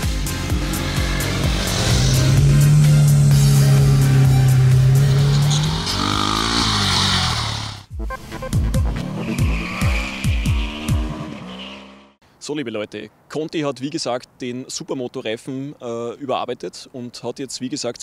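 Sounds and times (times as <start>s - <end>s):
background music with steady beat: 0.0s - 6.1s, 7.9s - 11.4s
motorcycle engines revving and passing: 0.0s - 7.9s.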